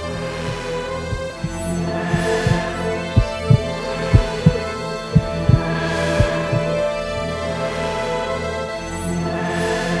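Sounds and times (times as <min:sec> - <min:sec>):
heartbeat thumps: 0:00.5 - 0:06.8.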